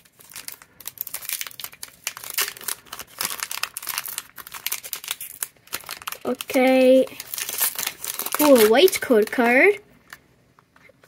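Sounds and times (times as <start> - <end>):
foil wrapper crinkling: 0.0 - 9.7.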